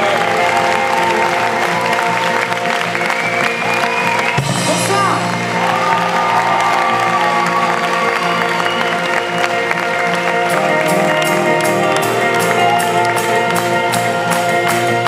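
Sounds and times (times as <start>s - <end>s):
band playing held guitar chords: 0.0s - 15.0s.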